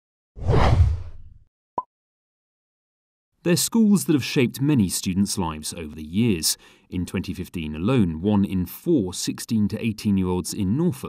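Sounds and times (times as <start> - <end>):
whoosh sound effect: 0.4 - 1.4.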